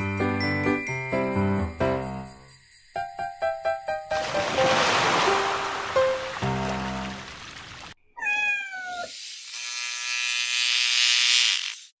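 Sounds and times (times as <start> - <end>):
cat meowing: 8.2 - 9.1
electric buzz: 9.1 - 11.9.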